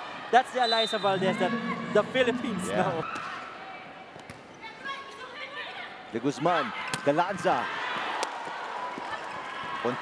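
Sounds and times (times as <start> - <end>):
arena crowd background noise: 0.0 - 10.0.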